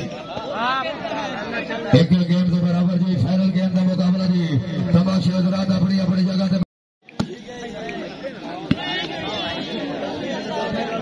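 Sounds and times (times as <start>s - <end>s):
crowd chattering: 0.0s - 11.0s.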